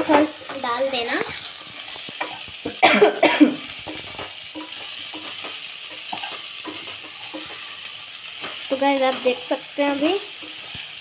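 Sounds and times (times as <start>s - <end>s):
rice and peas sizzling: 0.0s - 11.0s
spatula scraping a metal pot: 3.8s - 7.8s.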